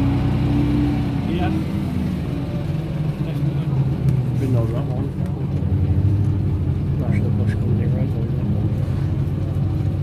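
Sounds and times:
bus diesel engine droning: 0:00.0 - 0:10.0.

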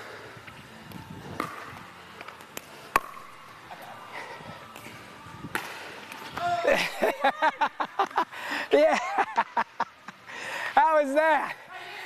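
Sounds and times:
paddles hitting plastic ball: 0:00.9 - 0:03.4, 0:05.5 - 0:06.4.

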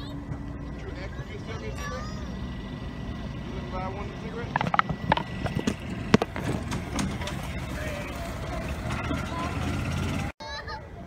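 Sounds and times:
low steady rumble: 0:00.0 - 0:10.3
phone microphone handling: 0:04.5 - 0:06.8.

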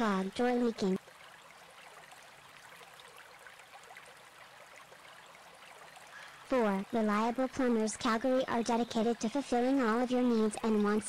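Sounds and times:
faint steady hiss: 0:00.0 - 0:11.0.

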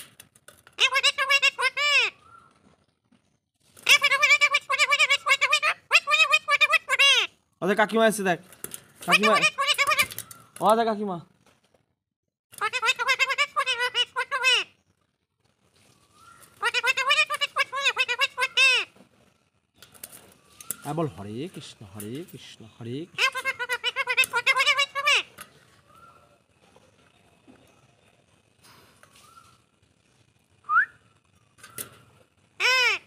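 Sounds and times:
parakeet calls: 0:03.9 - 0:07.3, 0:09.1 - 0:10.6, 0:12.6 - 0:14.7, 0:16.6 - 0:18.9, 0:23.1 - 0:26.3.

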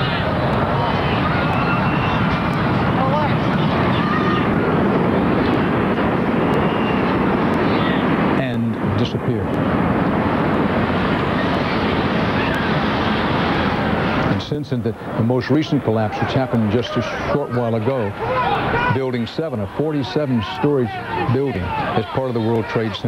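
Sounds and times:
faint bystanders' voices: 0:00.0 - 0:23.0.

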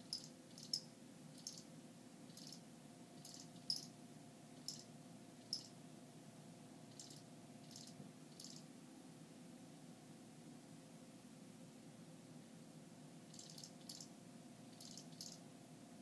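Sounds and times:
cricket chirping faintly: 0:00.0 - 0:05.9, 0:06.8 - 0:08.7, 0:13.2 - 0:16.0.

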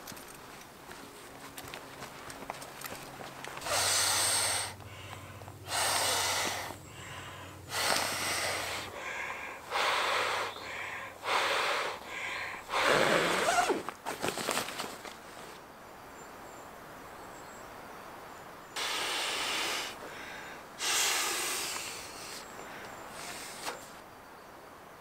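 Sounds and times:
person blowing into valve: 0:03.6 - 0:04.8, 0:12.7 - 0:13.8, 0:20.8 - 0:22.4
person inhaling: 0:03.6 - 0:13.8, 0:18.8 - 0:23.9.

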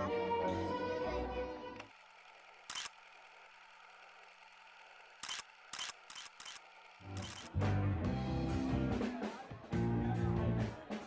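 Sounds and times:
short sharp clicks: 0:05.2 - 0:07.5
band music with guitar: 0:07.5 - 0:11.0.

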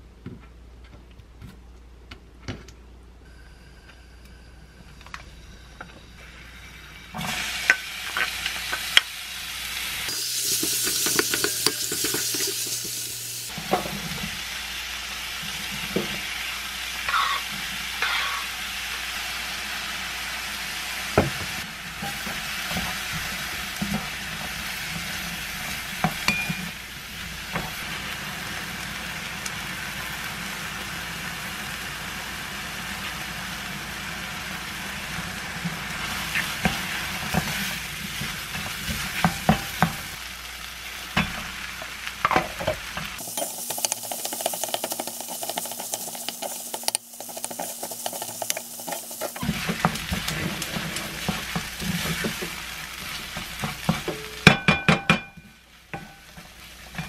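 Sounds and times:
vegetables sizzling in a frying pan: 0:06.2 - 0:54.7, 0:55.4 - 0:57.0
spatula scraping a pan: 0:42.6 - 0:54.1.

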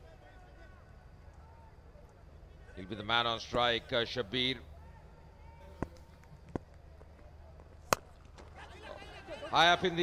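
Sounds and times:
faint stadium background: 0:00.0 - 0:10.0
cricket bat striking ball: 0:07.6 - 0:08.6.

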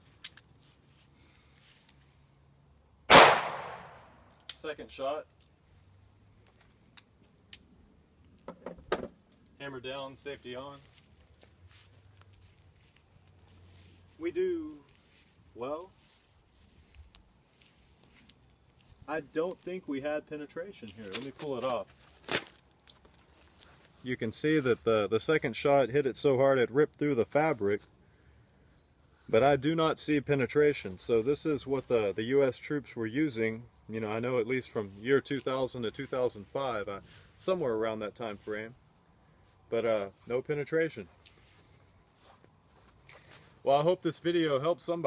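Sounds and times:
pistol shot with echo: 0:03.1 - 0:04.1.

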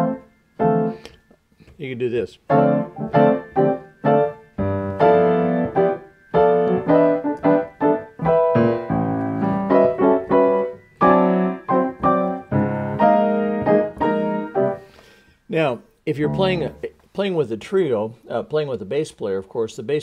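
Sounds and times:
grand piano chords: 0:00.0 - 0:01.1, 0:02.4 - 0:14.9, 0:16.1 - 0:17.0.

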